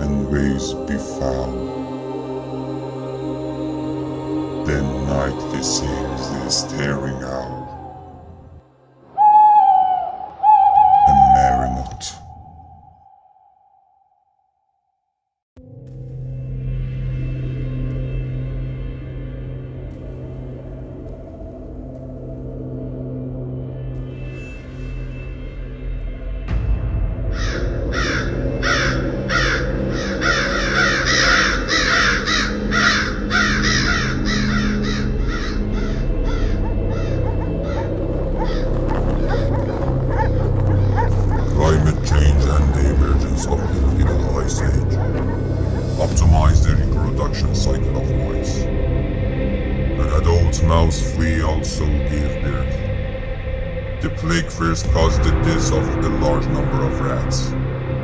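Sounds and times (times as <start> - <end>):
low steady drone: 0.0 - 12.8, 15.7 - 58.0
owl hooting: 6.3 - 14.0, 27.4 - 47.3
crows cawing: 9.2 - 11.6, 27.3 - 41.8, 43.4 - 46.1.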